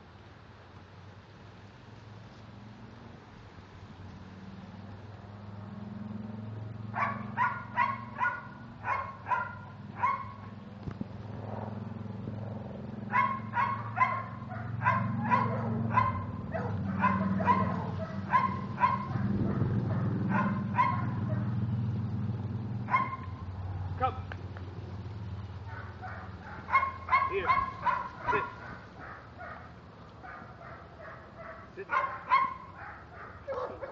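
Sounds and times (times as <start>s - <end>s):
dog barking: 6.9s - 10.5s, 13.1s - 21.6s, 22.9s - 23.4s, 25.7s - 33.9s.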